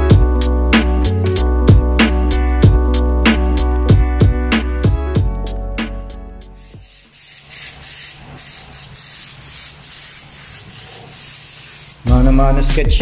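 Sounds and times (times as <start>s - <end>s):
music: 0.0s - 7.1s, 12.0s - 13.0s.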